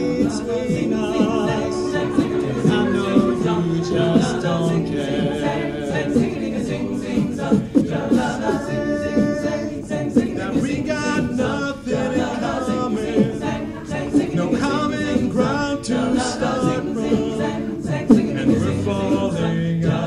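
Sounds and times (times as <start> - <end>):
beatboxed percussion clicking: 0.0 - 20.0
men singing wordless harmonies: 0.0 - 20.0.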